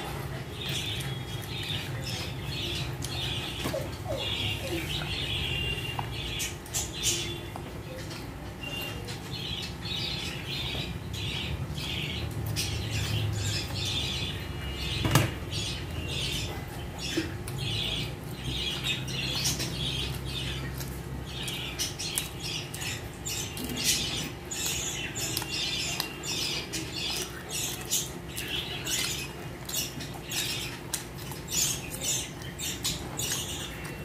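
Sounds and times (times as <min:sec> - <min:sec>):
chewing and lip-smacking: 0:16.3 - 0:34.0.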